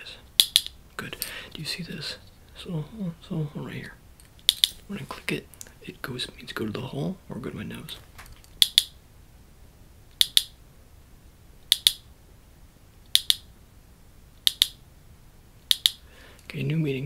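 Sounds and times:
hand-held clicker double clicks: 0:00.4 - 0:00.7, 0:04.4 - 0:04.8, 0:08.6 - 0:09.0, 0:10.2 - 0:10.6, 0:11.7 - 0:12.0, 0:13.1 - 0:13.5, 0:14.4 - 0:14.8, 0:15.7 - 0:16.0.

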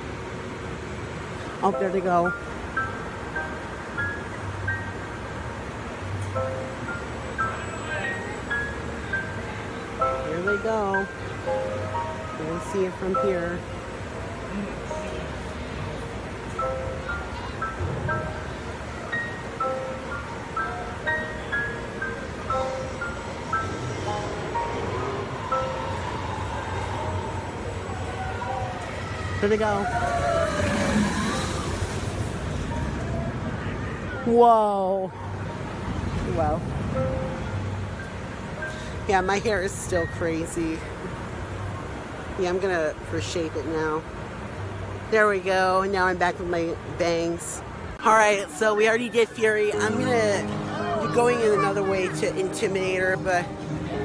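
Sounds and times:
roller coaster rushing roar: 0:06.9 - 0:43.0.

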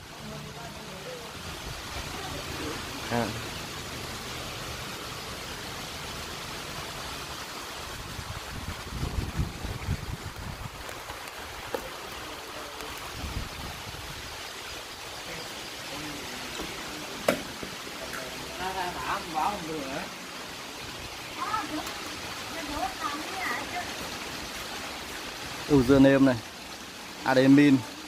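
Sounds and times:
steady background hiss: 0:00.0 - 0:28.0.

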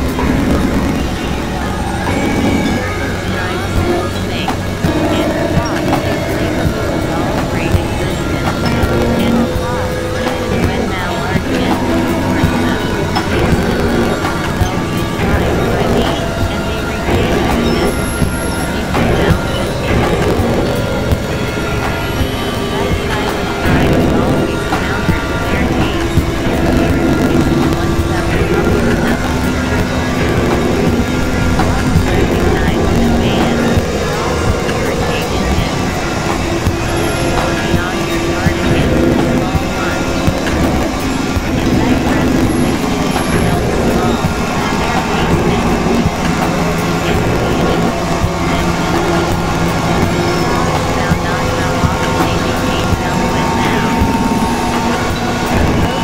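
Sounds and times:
synthesizer drone and noise music: 0:00.0 - 0:56.0.

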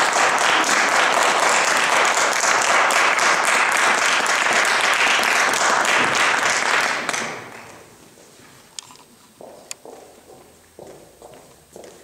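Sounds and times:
footsteps: 0:07.0 - 0:12.0.

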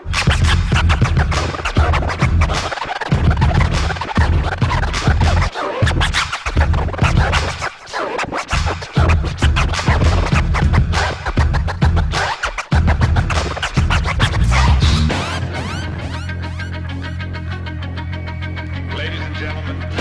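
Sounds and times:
heavy bass beat: 0:00.0 - 0:07.6, 0:08.3 - 0:17.7
turntable scratching: 0:00.0 - 0:17.2.

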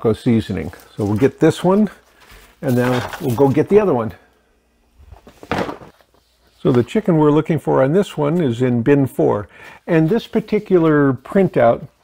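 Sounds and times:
rustling handling noise: 0:00.3 - 0:04.2, 0:05.0 - 0:07.5.

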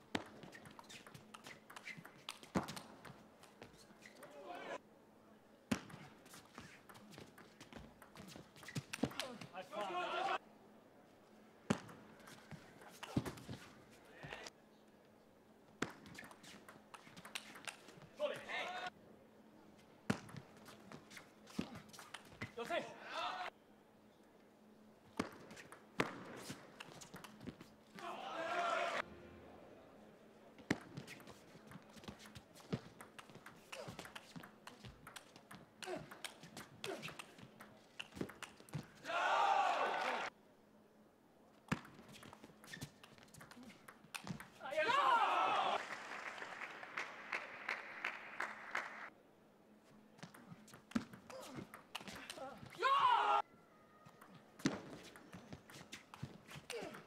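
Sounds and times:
people shouting and cheering: 0:09.6 - 0:10.4, 0:28.0 - 0:29.0, 0:39.0 - 0:40.3, 0:44.6 - 0:45.9, 0:52.2 - 0:54.1.

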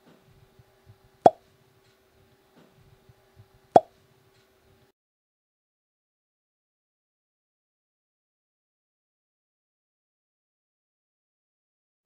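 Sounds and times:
faint steady hum: 0:00.0 - 0:04.9.

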